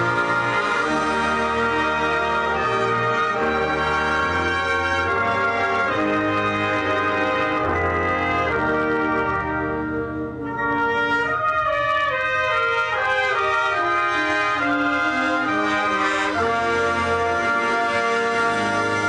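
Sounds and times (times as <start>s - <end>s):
brass ensemble playing chords: 0.0s - 19.0s.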